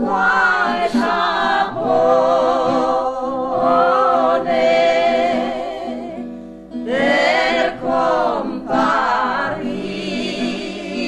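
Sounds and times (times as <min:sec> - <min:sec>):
folk choir singing: 0:00.0 - 0:11.0.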